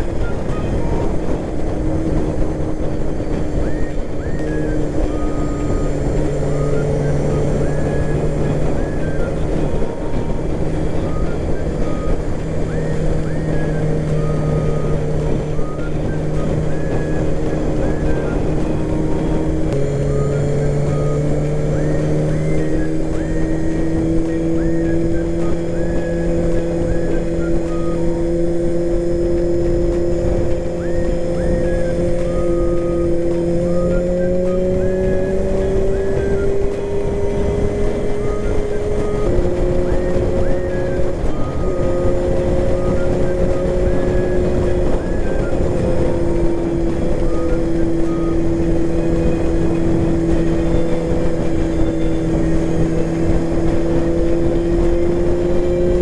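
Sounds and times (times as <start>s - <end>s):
motorcycle engine running: 0.0s - 56.0s
wind and road noise: 0.0s - 56.0s.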